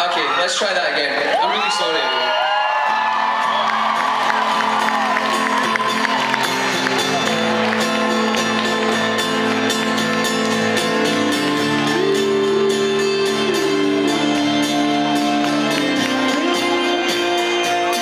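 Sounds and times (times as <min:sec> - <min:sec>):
crowd cheering and whooping: 0:00.0 - 0:18.0
live rock band on guitars: 0:02.1 - 0:18.0.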